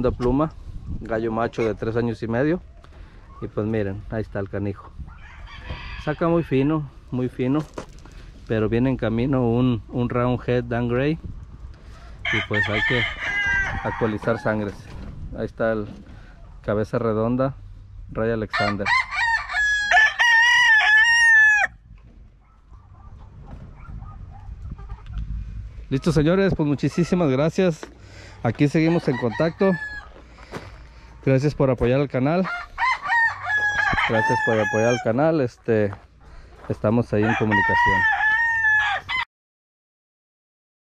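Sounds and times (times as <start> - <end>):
rooster crowing: 5.1 - 6.5, 12.0 - 14.6, 18.5 - 21.8, 28.8 - 30.2, 32.4 - 35.1, 37.2 - 39.3.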